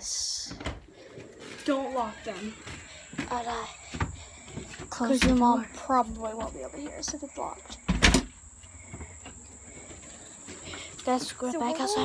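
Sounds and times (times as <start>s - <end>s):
door thudding shut: 7.9s - 8.3s.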